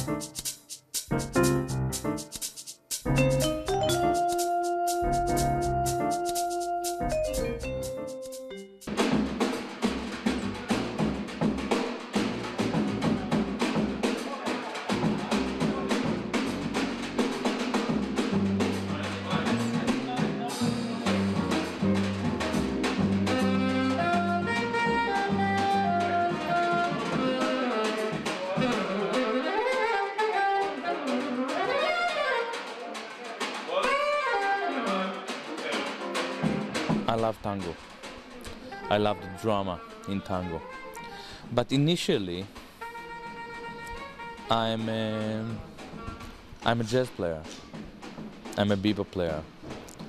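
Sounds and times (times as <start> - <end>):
drum and percussion hits: 0.0 - 29.2, 31.5 - 34.1, 35.2 - 38.7, 44.0 - 50.0
soprano saxophone melody: 3.5 - 8.7, 20.6 - 32.7, 33.9 - 35.3, 42.8 - 44.6
low bass line: 5.0 - 6.2.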